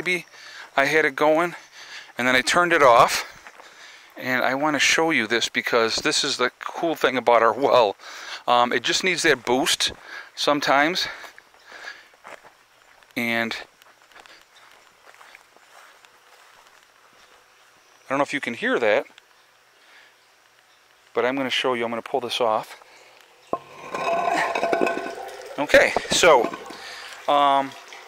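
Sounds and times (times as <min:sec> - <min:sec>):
footsteps on grass and gravel: 0:12.1 - 0:17.5
water trickling into tank: 0:23.3 - 0:28.0
concrete lid scraping and knocking: 0:23.4 - 0:27.0.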